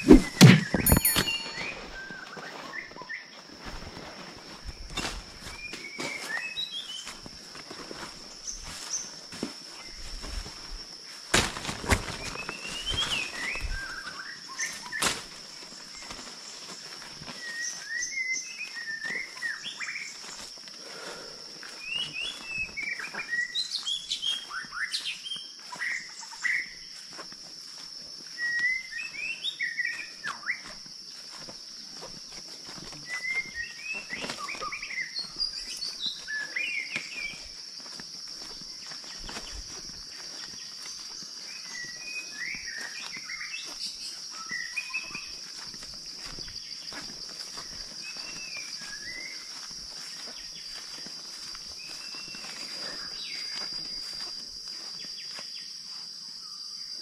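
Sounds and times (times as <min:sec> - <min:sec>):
birds chirping and trilling: 0:00.0 - 0:03.4, 0:12.2 - 0:20.4, 0:21.5 - 0:27.1, 0:32.7 - 0:37.6, 0:38.8 - 0:55.4.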